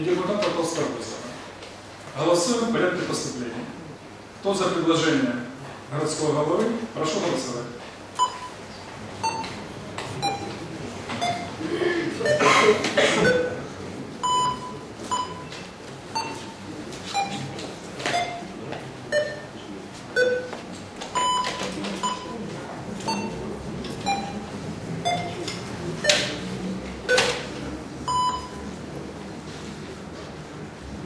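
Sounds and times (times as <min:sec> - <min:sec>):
murmur of voices: 0:00.0 - 0:31.0
short electronic beeps: 0:08.2 - 0:08.6, 0:09.2 - 0:09.5, 0:10.2 - 0:10.6, 0:11.2 - 0:11.6, 0:12.2 - 0:12.6, 0:13.2 - 0:13.6, 0:14.2 - 0:15.5, 0:16.2 - 0:17.5, 0:18.1 - 0:18.5, 0:19.1 - 0:19.5, 0:20.2 - 0:20.5, 0:21.2 - 0:22.4, 0:23.1 - 0:23.4, 0:24.0 - 0:25.4, 0:26.0 - 0:26.4, 0:27.1 - 0:27.5, 0:28.1 - 0:28.6.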